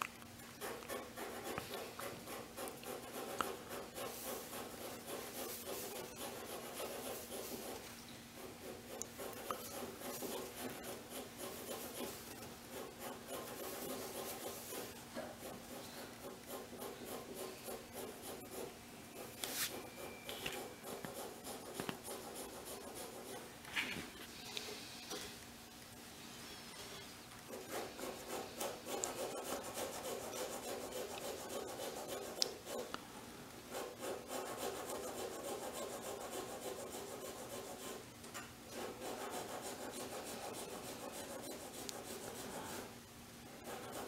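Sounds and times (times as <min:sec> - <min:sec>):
drawing tool scratching surface: 0:00.6 - 0:07.8, 0:08.4 - 0:23.5, 0:27.5 - 0:32.9, 0:33.7 - 0:38.0, 0:38.7 - 0:42.9, 0:43.6 - 0:44.0.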